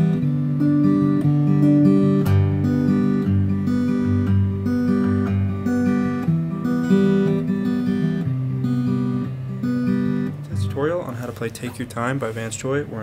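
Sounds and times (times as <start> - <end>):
acoustic guitar fingerpicked: 0.0 - 13.0
man's voice: 10.5 - 13.0.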